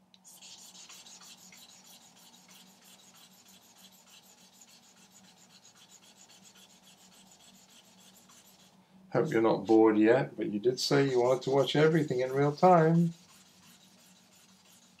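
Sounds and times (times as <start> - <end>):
charcoal scrubbing copper plate: 0.3 - 8.7, 11.0 - 15.0.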